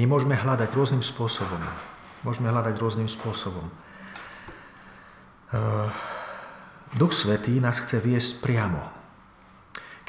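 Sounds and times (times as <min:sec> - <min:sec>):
man's wordless vocal tone: 0:05.5 - 0:06.1.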